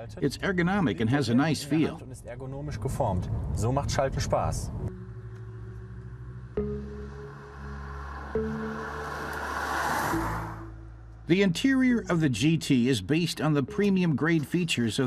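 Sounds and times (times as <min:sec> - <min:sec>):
car driving past: 0:04.8 - 0:11.2
background music with held chords: 0:04.9 - 0:15.0.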